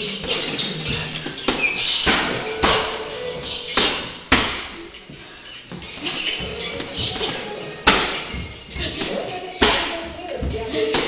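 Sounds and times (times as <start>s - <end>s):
punches thudding on heavy bag: 1.5s - 4.8s, 6.4s - 11.0s.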